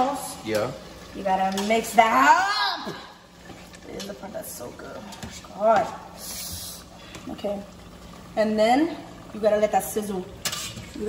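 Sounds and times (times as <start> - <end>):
sauce sizzling and bubbling: 0.0 - 11.0
spatula stirring in pot: 10.4 - 11.0.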